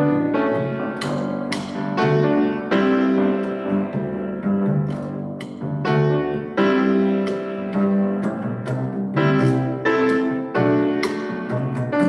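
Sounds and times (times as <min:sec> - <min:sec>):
double bass line: 0:00.0 - 0:12.0
grand piano chords: 0:00.0 - 0:12.0.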